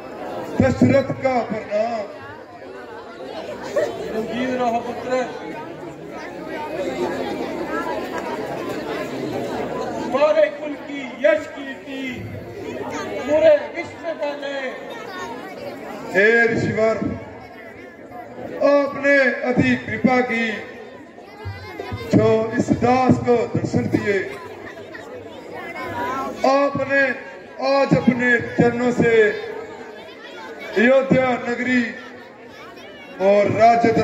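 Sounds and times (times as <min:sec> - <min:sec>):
chatter of voices: 0:00.0 - 0:34.0
man talking: 0:00.6 - 0:02.2, 0:10.0 - 0:12.4, 0:13.2 - 0:14.8, 0:16.1 - 0:17.4, 0:18.6 - 0:20.8, 0:21.9 - 0:24.4, 0:26.4 - 0:29.6, 0:30.7 - 0:32.2, 0:33.2 - 0:34.0.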